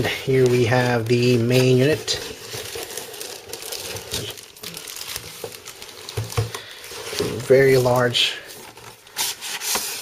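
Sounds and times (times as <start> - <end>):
cardboard rustling and scraping: 5.0 - 10.0.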